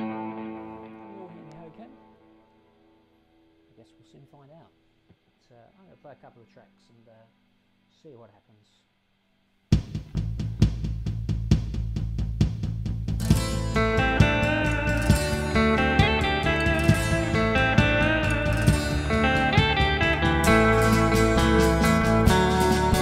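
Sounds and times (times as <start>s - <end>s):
electric guitar playing: 0.0s - 3.7s, 13.2s - 23.0s
drum beat: 9.7s - 23.0s.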